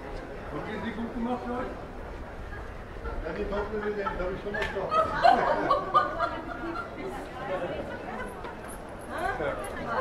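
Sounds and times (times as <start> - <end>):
people chattering: 0.0 - 10.0
street noise: 0.0 - 10.0.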